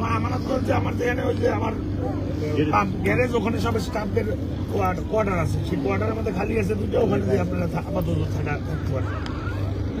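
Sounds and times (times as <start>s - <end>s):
men talking: 0.0s - 9.3s
steady low hum: 0.0s - 10.0s.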